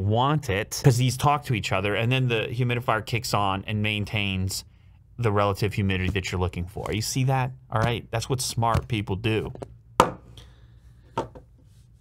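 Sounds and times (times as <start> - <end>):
knock on a tabletop: 10.0 - 10.2, 11.2 - 11.5.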